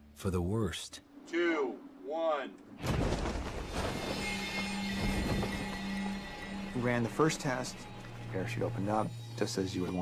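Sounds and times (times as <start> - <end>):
music: 3.7 - 10.0.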